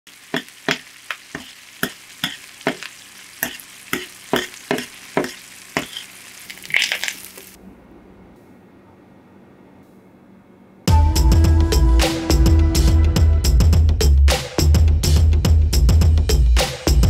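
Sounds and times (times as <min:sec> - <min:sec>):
butter sizzling in a pan: 0:00.1 - 0:07.6
spoon scraping pan: 0:00.1 - 0:07.6.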